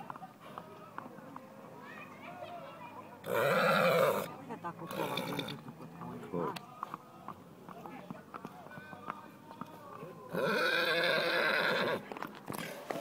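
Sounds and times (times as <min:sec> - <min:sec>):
hooves clip-clopping on asphalt: 0:00.0 - 0:03.2, 0:04.3 - 0:10.6, 0:11.8 - 0:13.0
horse whinny: 0:03.2 - 0:04.3, 0:04.9 - 0:05.6, 0:10.3 - 0:12.0.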